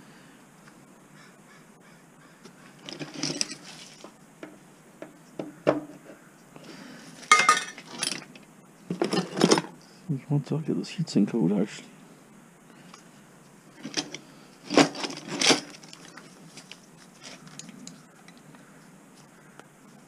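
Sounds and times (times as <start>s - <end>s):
metal tools clinking and clattering: 2.8s - 4.0s, 7.2s - 9.7s, 13.8s - 18.0s.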